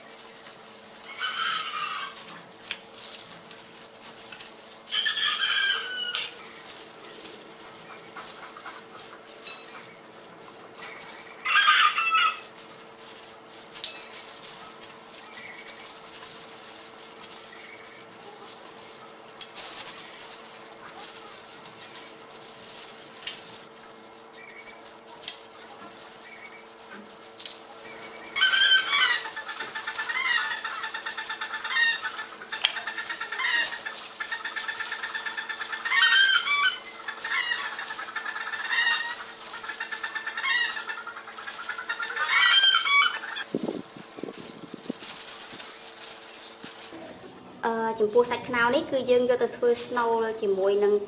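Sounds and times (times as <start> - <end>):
bird rattling calls: 18.8 - 46.9.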